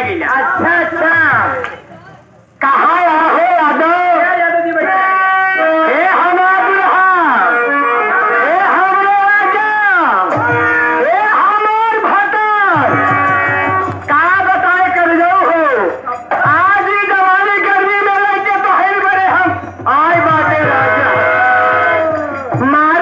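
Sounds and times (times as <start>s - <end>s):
harmonium notes: 5.5s - 9.6s, 10.2s - 23.0s
rhythmic percussion clicking: 10.2s - 11.0s, 12.7s - 23.0s.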